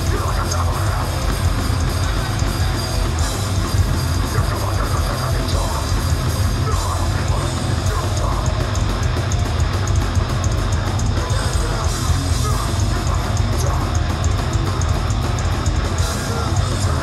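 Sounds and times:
punk band playing live: 0:00.0 - 0:17.0.

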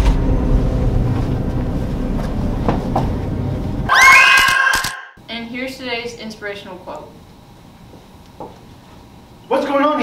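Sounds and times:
deep steady rumble: 0:00.0 - 0:03.9.

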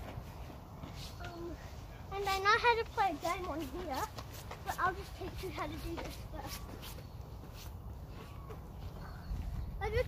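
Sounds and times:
child speaking: 0:01.2 - 0:06.9, 0:09.0 - 0:10.0
wind buffeting microphone: 0:07.8 - 0:10.0.

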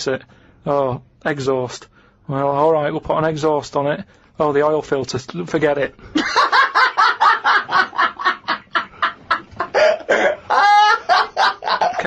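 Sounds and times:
man laughing hard: 0:06.1 - 0:12.0.

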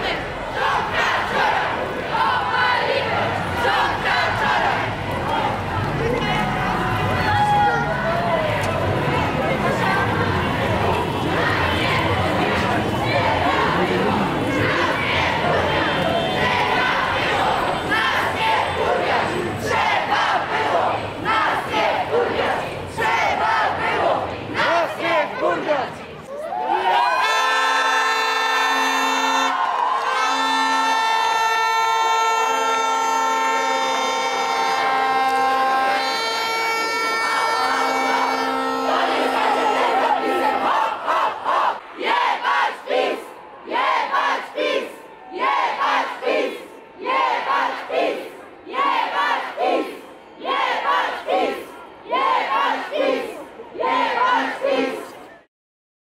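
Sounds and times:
crowd chanting: 0:00.0 - 0:55.5
protest crowd shouting: 0:00.0 - 0:55.5
horns blaring: 0:00.6 - 0:21.5, 0:27.1 - 0:41.6.

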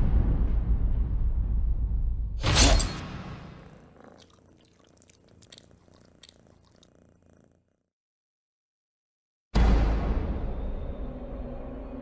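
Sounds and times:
cat purring: 0:03.4 - 0:07.9.

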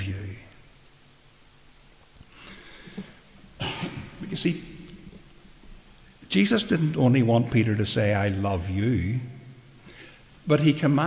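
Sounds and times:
man coughing: 0:03.6 - 0:04.4.

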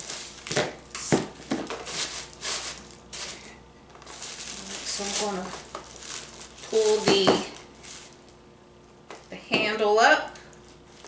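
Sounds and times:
tissue paper crinkling: 0:00.0 - 0:08.4.

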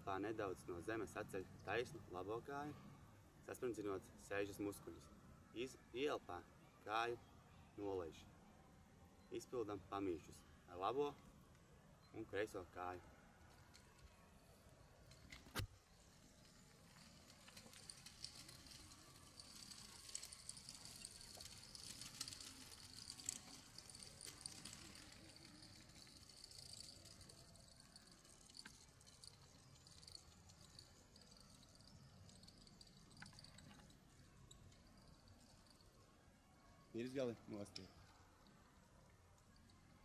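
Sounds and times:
soft high-pitched hiss: 0:00.0 - 0:40.0.

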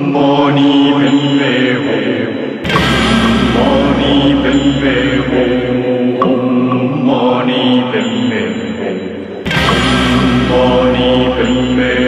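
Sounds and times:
held chant-like tones: 0:00.0 - 0:12.0
low bass drone: 0:02.6 - 0:07.2, 0:09.5 - 0:12.0.

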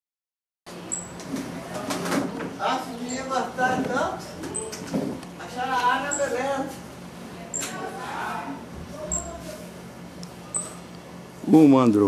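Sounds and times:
indistinct voices: 0:01.6 - 0:10.9.

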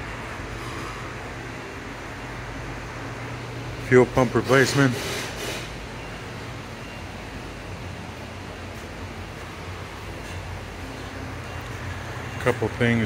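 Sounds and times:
ventilation hiss and hum: 0:00.0 - 0:13.0.

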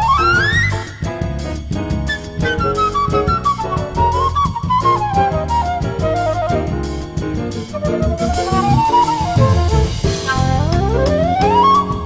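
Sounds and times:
jazz quartet playing: 0:05.0 - 0:12.0
flute phrase: 0:07.7 - 0:12.0.

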